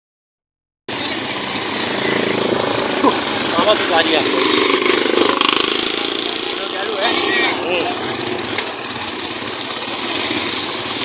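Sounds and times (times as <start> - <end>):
motorcycle engine running: 0.9 - 11.0
street noise: 0.9 - 11.0.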